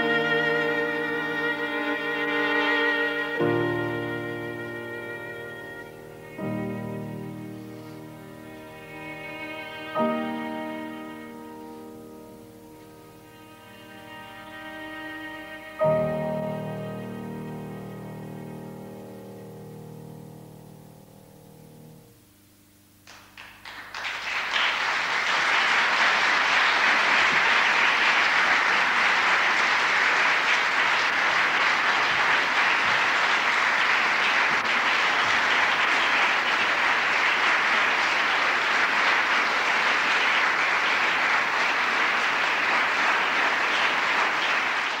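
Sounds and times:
audience applauding: 23.0 - 45.0.

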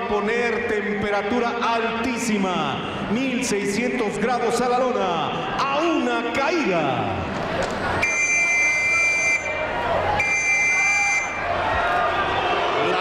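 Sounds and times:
crowd noise: 0.0 - 13.0
high buzzer tones: 8.0 - 9.6, 10.2 - 11.4.

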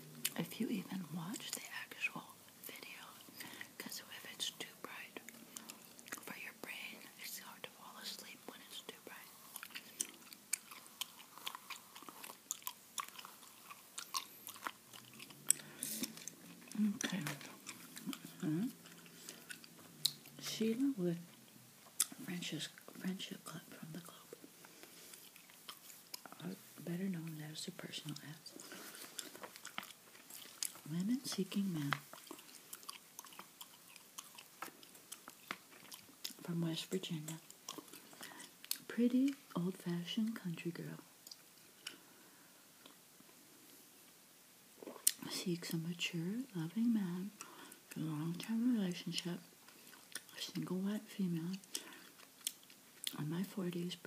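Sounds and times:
gum chewing mouth clicks: 9.5 - 20.5, 21.3 - 23.0, 28.0 - 39.5, 44.8 - 45.2, 49.7 - 50.4, 51.5 - 53.2.

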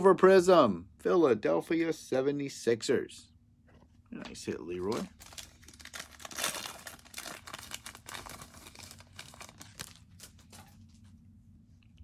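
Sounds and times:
foil pack tearing and crinkling: 4.8 - 10.7.

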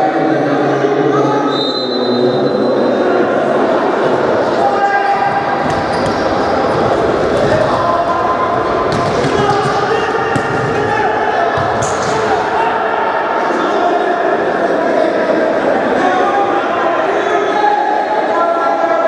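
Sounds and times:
crowd voices: 0.0 - 19.0
players shouting: 3.5 - 19.0.

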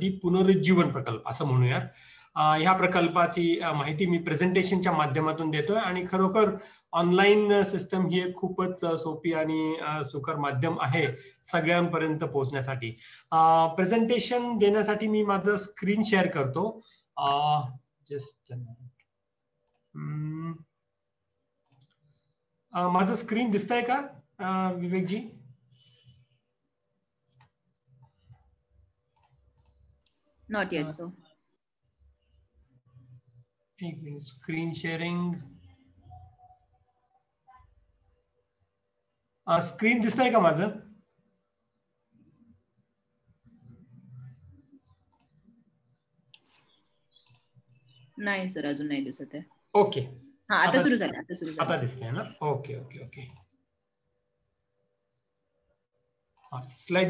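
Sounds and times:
man speaking: 0.0 - 18.9, 20.0 - 20.7, 22.7 - 25.4, 33.8 - 35.6, 39.5 - 40.9, 49.8 - 53.3, 56.5 - 57.0
computer mouse clicks: 21.6 - 22.2, 29.1 - 30.2, 43.6 - 45.5, 46.3 - 48.0, 53.2 - 53.5.

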